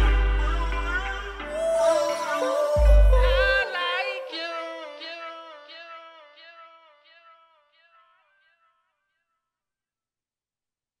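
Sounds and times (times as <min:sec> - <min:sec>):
high pitched tone: 0:00.0 - 0:05.2.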